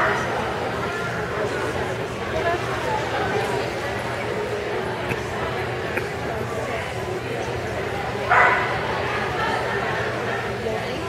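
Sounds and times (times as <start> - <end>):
murmur of background talk: 0.0 - 11.0
dog barking: 8.3 - 8.7.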